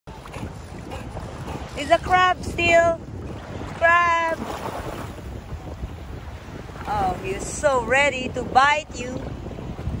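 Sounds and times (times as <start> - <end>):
wind rumbling on microphone: 0.1 - 10.0.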